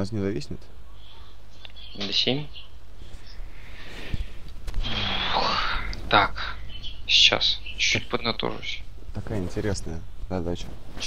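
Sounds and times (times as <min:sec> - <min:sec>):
low electrical hum: 0:00.0 - 0:11.0
breathy rush of noise: 0:02.9 - 0:06.8.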